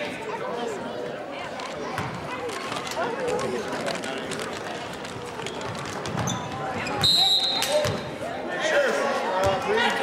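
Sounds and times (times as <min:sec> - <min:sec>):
crowd chatter: 0:00.0 - 0:10.0
basketballs bouncing on wooden floor: 0:05.6 - 0:07.1
referee's whistle blast: 0:07.0 - 0:07.8.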